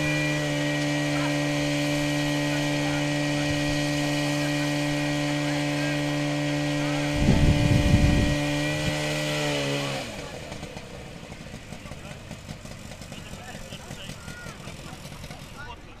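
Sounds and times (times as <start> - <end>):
pump engine running: 0.0 - 16.0
faint voices: 9.8 - 16.0.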